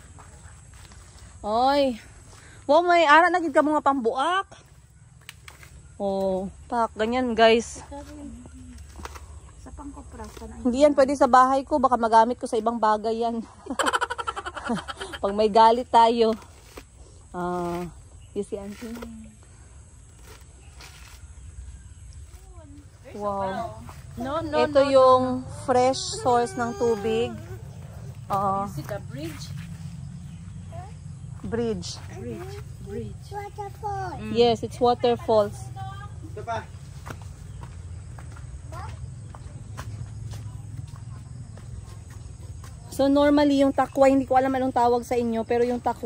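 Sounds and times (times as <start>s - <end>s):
coconut husk fibrous rasp: 16.2s - 19.4s, 20.0s - 22.5s
steady low rumble: 27.3s - 42.8s.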